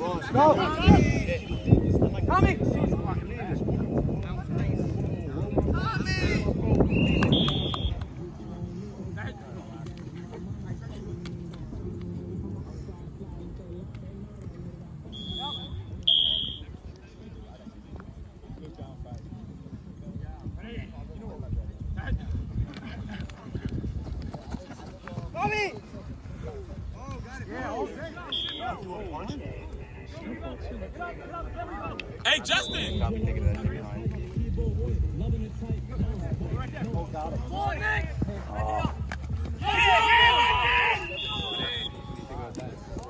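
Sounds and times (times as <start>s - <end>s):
faint distant voices: 0.0s - 39.6s
referee whistle blasts: 6.9s - 8.0s, 15.1s - 16.7s, 28.3s - 28.8s, 32.5s - 33.1s, 40.9s - 42.0s
running footsteps on artificial turf: 21.4s - 29.8s, 32.3s - 43.0s
players shouting: 27.7s - 28.9s, 32.3s - 33.2s, 36.7s - 42.4s.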